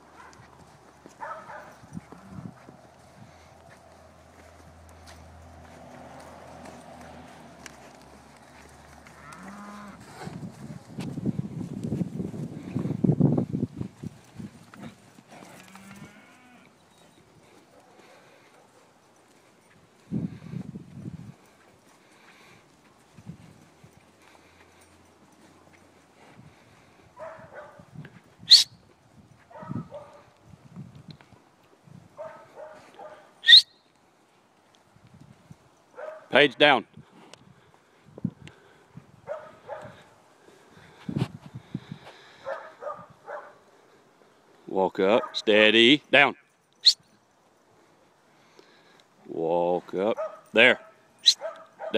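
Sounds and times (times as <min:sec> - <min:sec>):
cattle scuffling: 0:00.0 - 0:33.3
cow mooing: 0:09.1 - 0:10.0, 0:15.4 - 0:16.8
dog yipping: 0:28.5 - 0:28.7, 0:32.2 - 0:33.7, 0:50.2 - 0:51.9.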